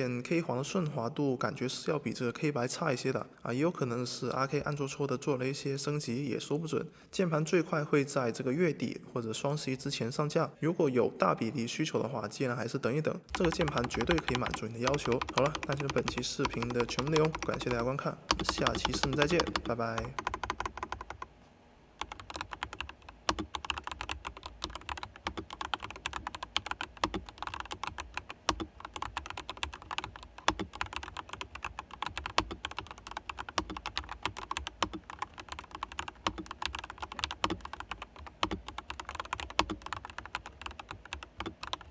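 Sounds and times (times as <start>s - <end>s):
mechanical keyboard key clacks: 13.3s - 21.1s.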